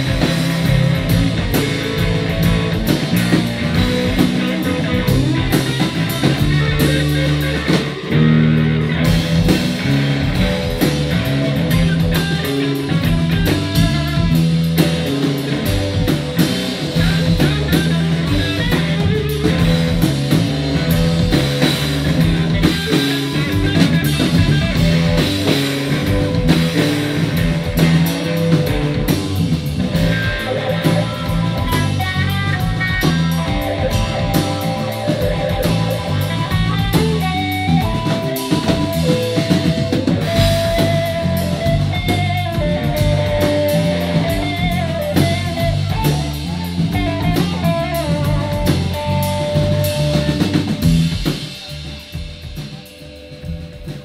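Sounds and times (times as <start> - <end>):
electric guitar melody: 0.0 - 54.0
rock band playing: 0.0 - 54.0.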